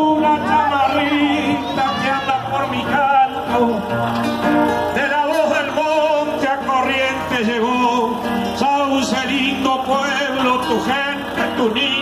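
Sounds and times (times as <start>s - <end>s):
man singing: 0.0s - 4.2s, 4.8s - 12.0s
acoustic guitar plucked: 0.0s - 12.0s.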